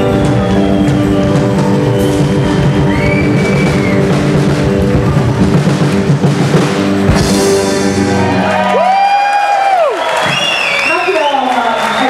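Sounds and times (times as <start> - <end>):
live rock band playing: 0.0 - 9.3.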